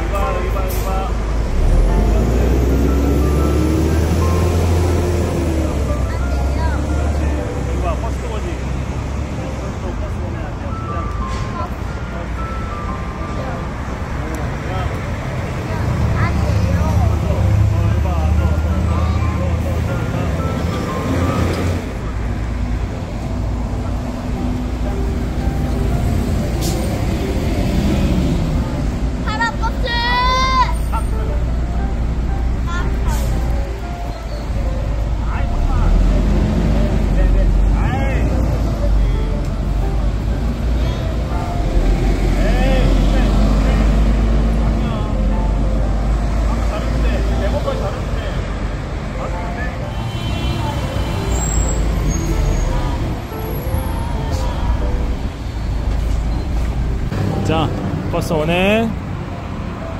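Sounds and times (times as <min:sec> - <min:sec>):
bus engine rumble pulling away: 0:00.0 - 0:59.9
city road traffic: 0:00.0 - 0:59.9.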